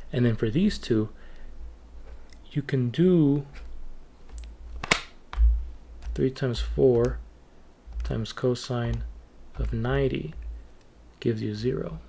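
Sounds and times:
sharp click: 4.3 - 6.2.

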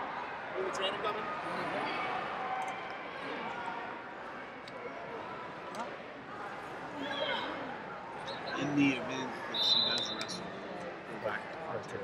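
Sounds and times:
indistinct voices in echoing hall: 0.0 - 12.0.

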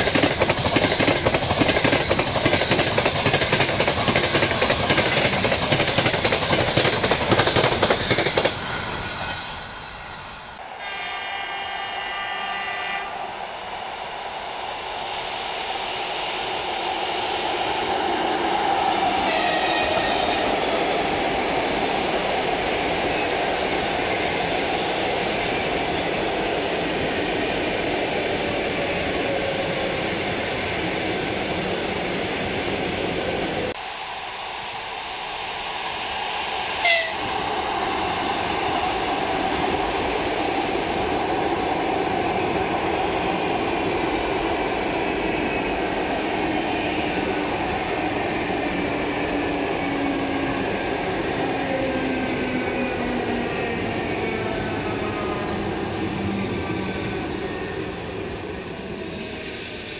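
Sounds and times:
train wheels rumbling on rails: 0.0 - 10.6, 13.8 - 59.9
train horn: 10.7 - 13.2, 19.3 - 20.6, 36.8 - 37.2.

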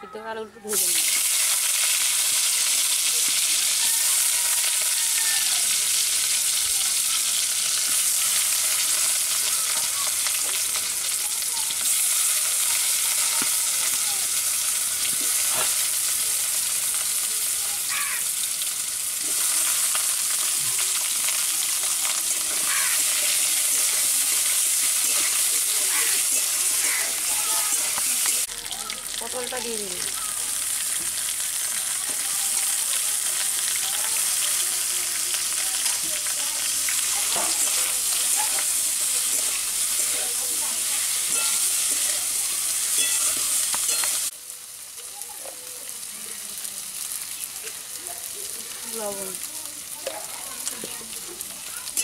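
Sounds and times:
vegetables sizzling in frying: 0.4 - 52.0.

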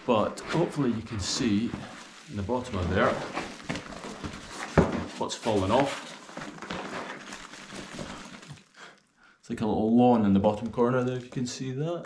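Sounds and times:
fabric rustling: 0.0 - 9.0.

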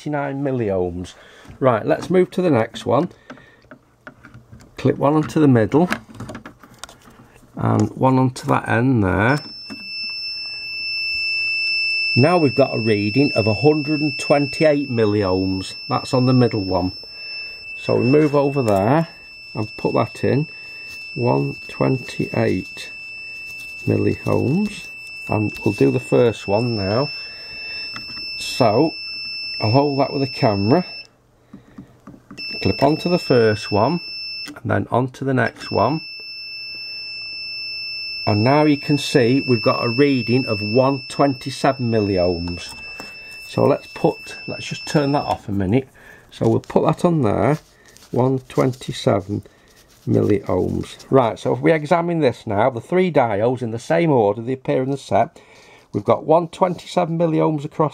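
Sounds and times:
high-pitched meter beep: 9.3 - 31.1, 32.4 - 34.6, 35.4 - 45.6
high-pitched electronic whine: 9.4 - 31.0.

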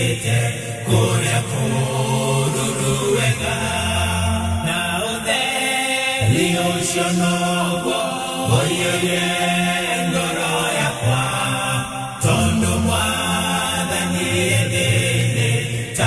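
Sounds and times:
gospel song with long sung notes: 0.0 - 16.0.

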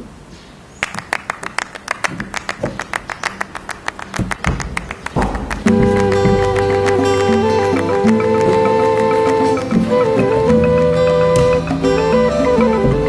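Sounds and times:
dull knocks: 4.1 - 7.0, 11.0 - 13.0
plucked-string music: 5.2 - 13.0.

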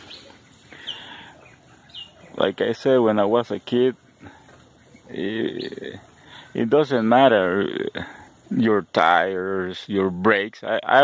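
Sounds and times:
bird chirping: 0.0 - 9.2
faint background noise: 0.0 - 11.0.

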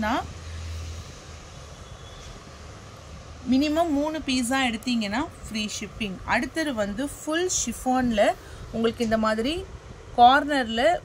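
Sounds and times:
even hiss: 0.0 - 11.0.

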